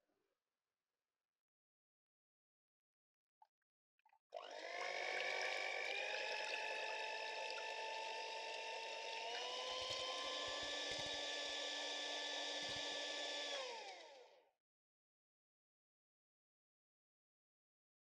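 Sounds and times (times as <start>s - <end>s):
electric hand mixer whining: 4.5s - 14.2s.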